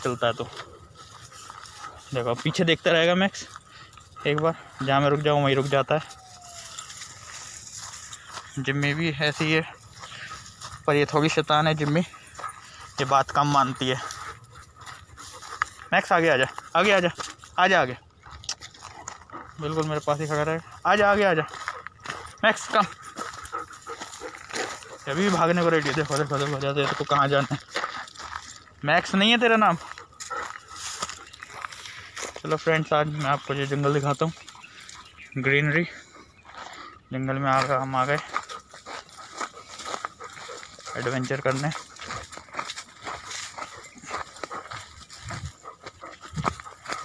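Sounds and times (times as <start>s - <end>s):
dog panting: 0.0s - 47.0s
footsteps crunching on dirt trail: 0.0s - 47.0s.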